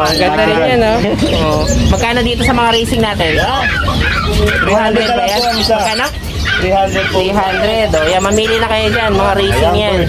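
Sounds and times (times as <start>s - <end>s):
men talking: 0.0s - 10.0s
dog barking: 2.4s - 5.4s, 6.4s - 10.0s.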